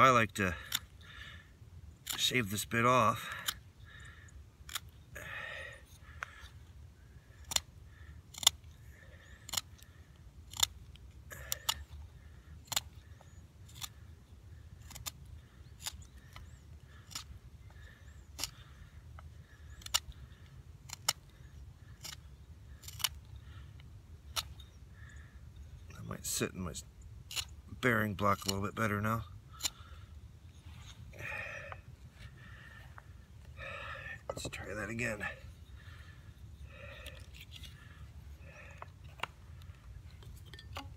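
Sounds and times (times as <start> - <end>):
knife shaving wood: 7.3 - 18.8, 19.4 - 23.6.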